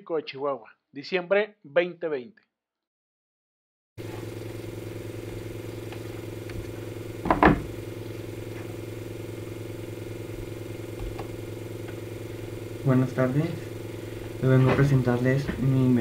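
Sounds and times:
low electrical hum: 4.0 - 16.0.

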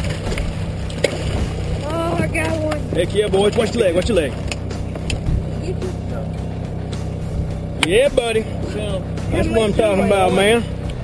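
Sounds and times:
boat motor humming: 0.0 - 11.0.

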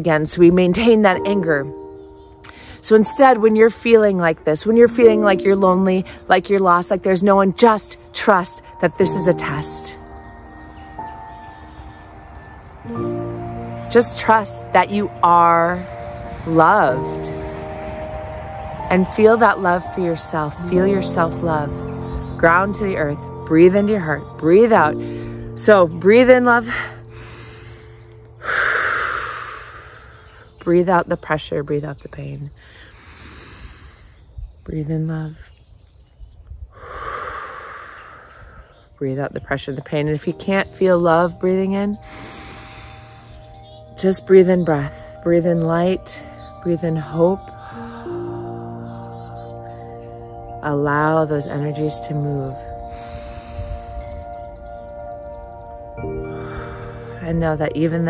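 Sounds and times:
soft music of sustained chords: 0.0 - 32.6, 38.4 - 58.0
woman breathing out: 27.0 - 30.5, 36.7 - 38.8, 42.0 - 43.5, 52.9 - 54.3.

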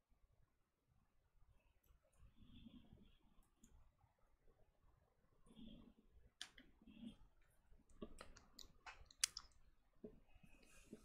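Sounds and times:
faint sharp clicks: 8.0 - 9.6.

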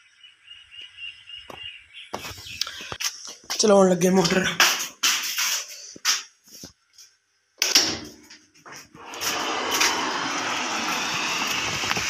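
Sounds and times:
electric pump running: 9.0 - 12.0
water flowing: 9.0 - 12.0.

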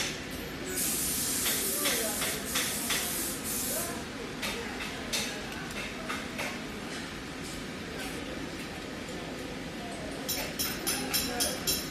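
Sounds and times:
short hissing bursts: 0.7 - 4.0.

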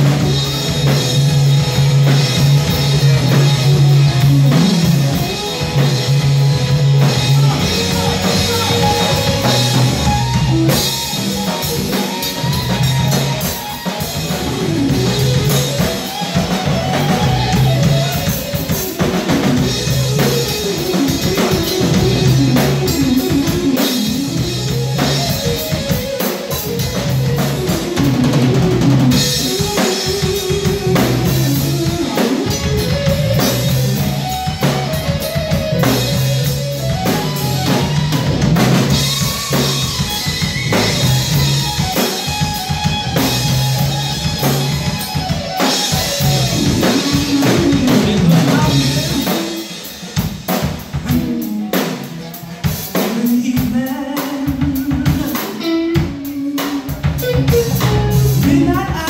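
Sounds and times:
instrumental funk band playing: 0.0 - 59.0.

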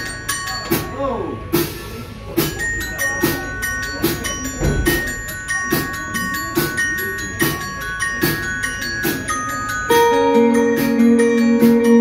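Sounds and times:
bell-like guitar notes ringing: 0.0 - 12.0
live band playing: 0.0 - 12.0.

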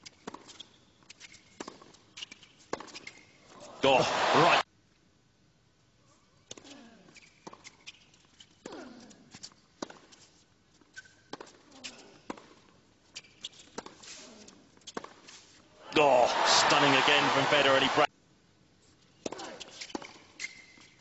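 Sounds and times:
crowd cheering loudly: 3.8 - 4.6, 15.8 - 18.1
hushed stadium crowd: 3.8 - 4.6, 15.8 - 18.1.

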